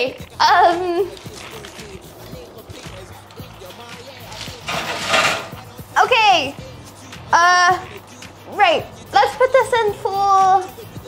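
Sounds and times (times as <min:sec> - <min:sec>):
background music: 0:00.0 - 0:11.0
baking tray scraping: 0:01.2 - 0:05.8.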